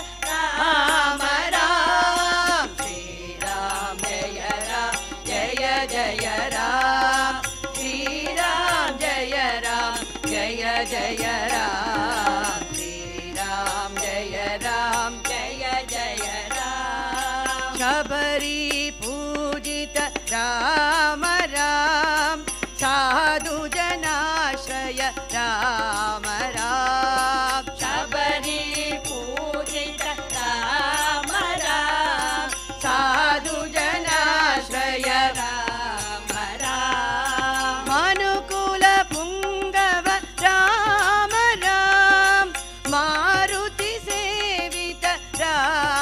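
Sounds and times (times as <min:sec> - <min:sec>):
harmonium held notes: 0:00.0 - 0:46.0
tabla strokes: 0:00.0 - 0:46.0
women singing in chorus: 0:00.0 - 0:46.0.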